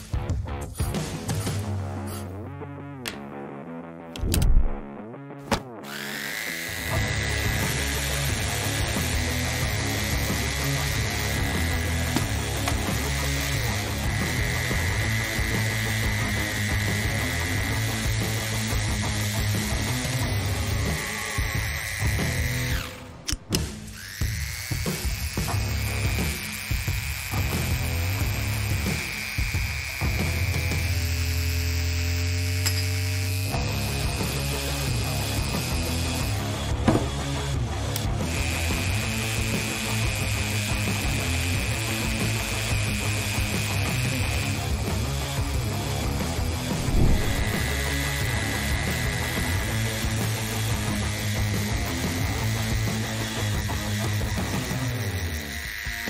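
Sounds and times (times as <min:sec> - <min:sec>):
rotary tool cutting metal: 0:05.8 - 0:56.0.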